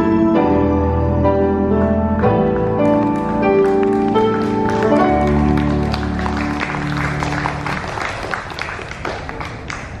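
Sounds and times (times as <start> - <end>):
held chord of backing music: 0.0 - 9.0
audience applauding: 2.8 - 10.0.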